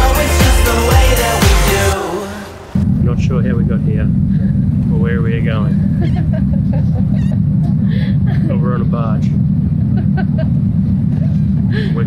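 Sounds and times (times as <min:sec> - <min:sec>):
ferry low rumble: 0:02.6 - 0:12.0.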